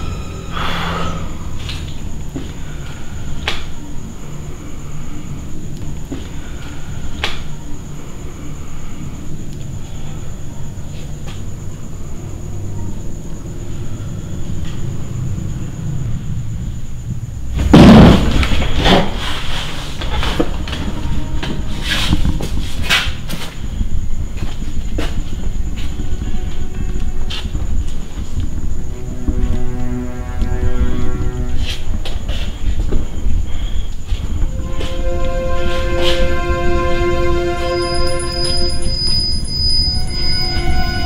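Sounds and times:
loud boom: 17.7 - 18.5
chord of held tones: 34.4 - 41.0.

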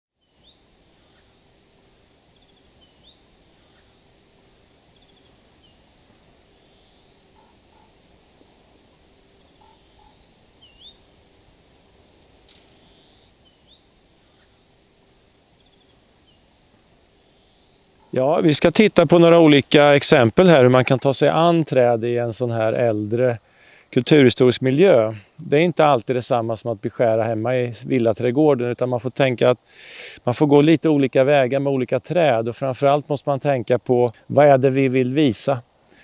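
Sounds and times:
low background noise: 0.2 - 36.0.

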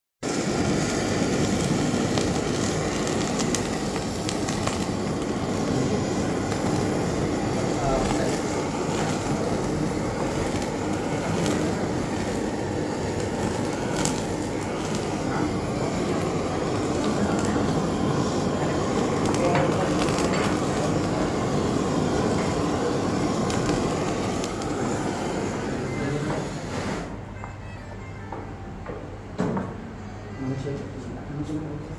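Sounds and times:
blowtorch flame burning: 0.2 - 27.3.

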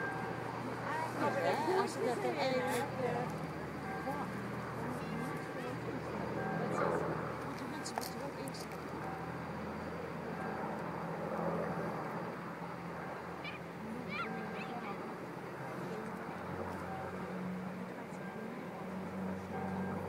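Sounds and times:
propeller aircraft engines droning: 0.0 - 20.0
voices murmuring: 0.0 - 20.0.

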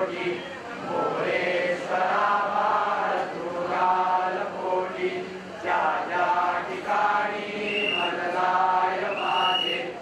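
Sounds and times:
group chanting in unison: 0.0 - 10.0.

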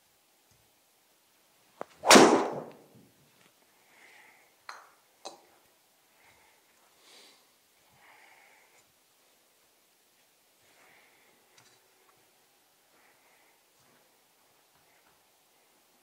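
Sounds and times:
golf club striking ball: 2.0 - 2.8.

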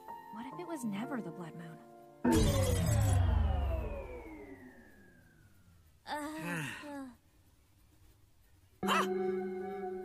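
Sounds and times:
magic ringing tone gliding downward: 2.3 - 5.8.

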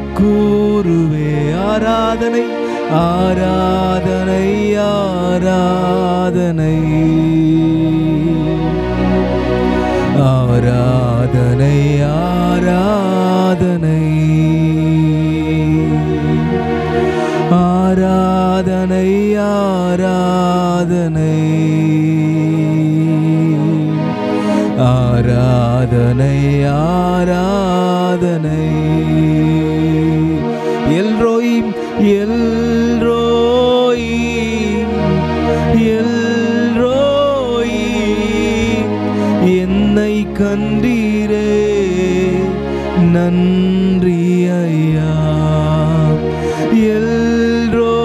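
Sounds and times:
backing music: 0.0 - 48.0.

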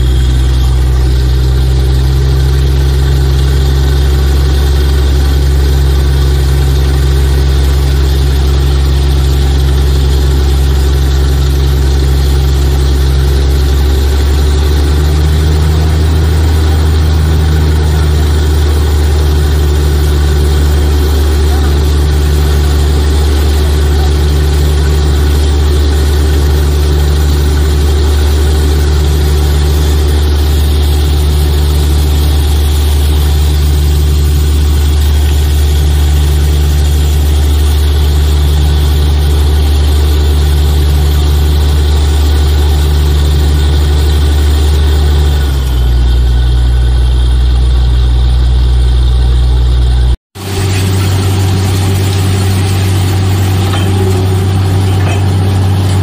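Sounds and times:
drilling rig heavy drone: 0.0 - 56.0.

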